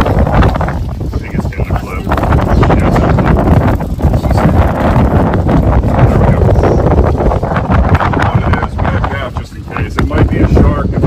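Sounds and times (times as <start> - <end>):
strong wind buffeting microphone: 0.0 - 11.0.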